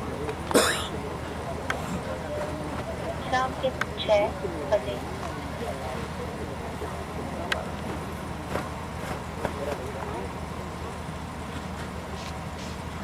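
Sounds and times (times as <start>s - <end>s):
indistinct voices: 0.0s - 12.6s
steady low hum: 0.0s - 13.0s.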